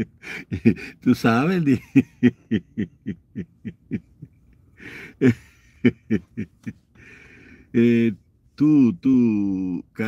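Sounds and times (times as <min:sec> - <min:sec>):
man chuckling: 0:00.0 - 0:01.0, 0:01.6 - 0:07.2.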